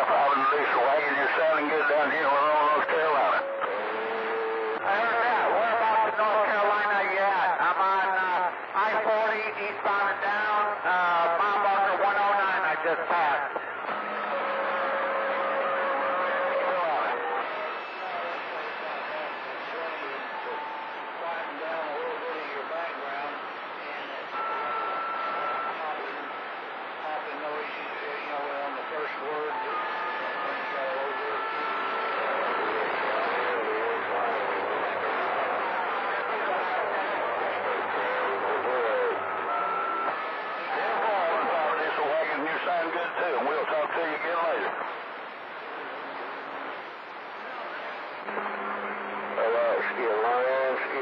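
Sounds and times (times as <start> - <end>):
radio static: 0.0 - 3.9, 4.8 - 51.0
faint garbled radio voices: 0.0 - 51.0.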